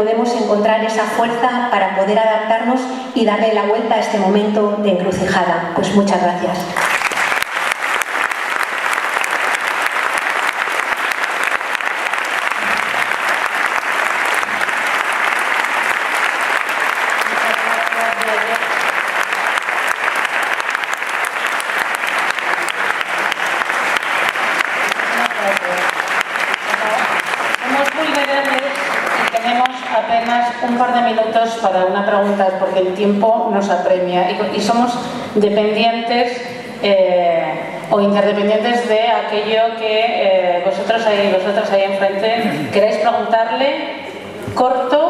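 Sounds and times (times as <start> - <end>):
audience applauding: 6.8 - 30.0
person speaking: 17.2 - 18.8, 25.0 - 25.9, 26.6 - 30.8.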